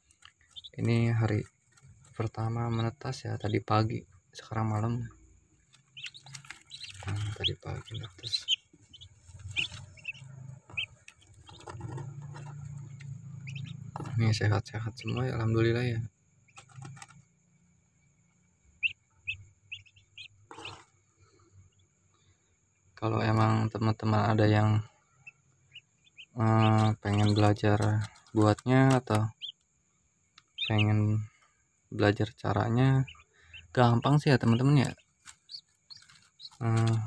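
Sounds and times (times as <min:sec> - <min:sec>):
ducklings peeping faintly: 0:00.0 - 0:37.0.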